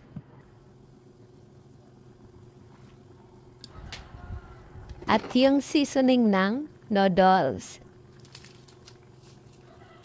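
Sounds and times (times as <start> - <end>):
broth bubbling in a pan: 0.5 - 3.8.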